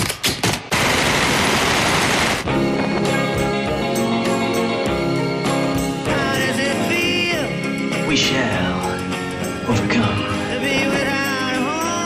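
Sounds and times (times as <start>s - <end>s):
rapid gunfire din: 0.0s - 2.5s
sharp cracks: 0.0s - 3.2s.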